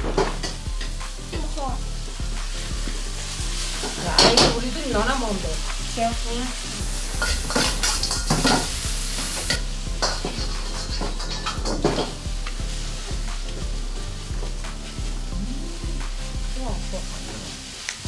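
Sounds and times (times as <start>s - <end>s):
food sizzling in a pan: 0.0s - 18.0s
utensils scraping a pan: 0.2s - 1.0s, 7.0s - 13.6s.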